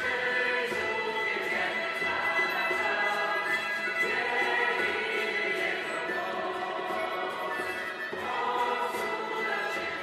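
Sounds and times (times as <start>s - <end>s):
choir singing worship song: 0.0s - 10.0s.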